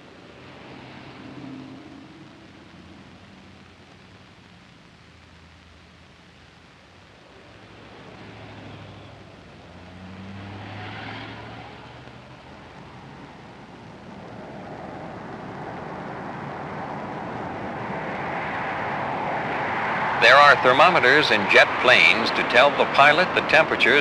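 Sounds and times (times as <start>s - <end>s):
jet airliner engine rushing: 14.2s - 24.0s.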